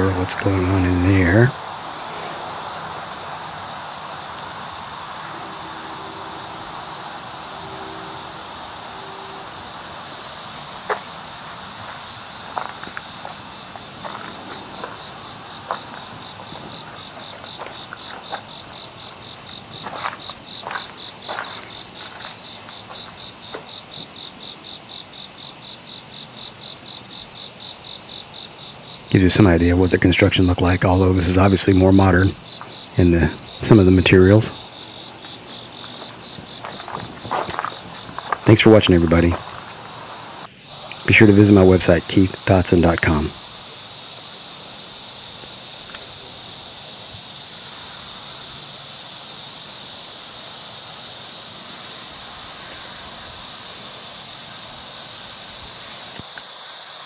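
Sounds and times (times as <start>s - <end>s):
insects chirping in grass: 0.0s - 57.0s
pulsed insect chirp: 0.0s - 57.0s.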